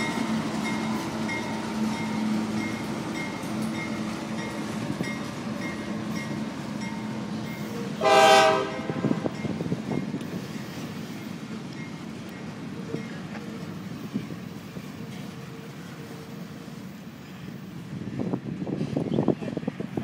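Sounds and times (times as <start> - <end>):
diesel locomotive engine drone: 0.0 - 20.0
loud train horn blast: 7.8 - 9.3.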